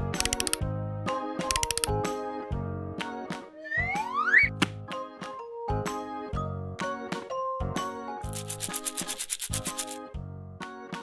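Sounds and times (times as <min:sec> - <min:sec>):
children's music with bass line: 0:00.0 - 0:11.0
scratchy rubbing strokes: 0:08.3 - 0:10.0.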